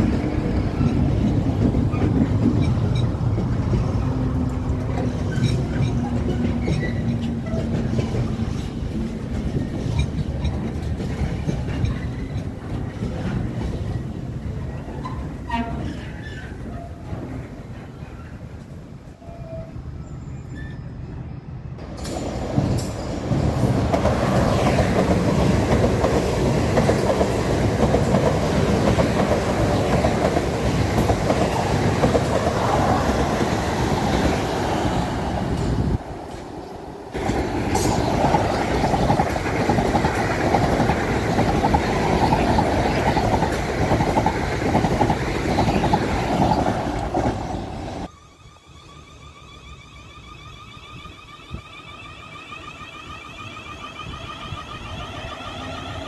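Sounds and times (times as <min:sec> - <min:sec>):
electric train running past: 0:00.0 - 0:56.0.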